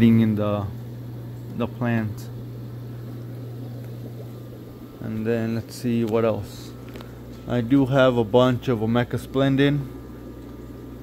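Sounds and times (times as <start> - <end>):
aquarium equipment hum: 0.0 - 11.0
bubbling aquarium air tubes: 0.0 - 11.0.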